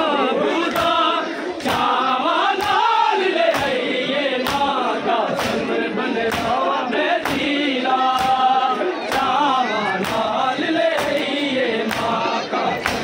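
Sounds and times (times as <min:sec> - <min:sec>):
men chanting: 0:00.0 - 0:13.0.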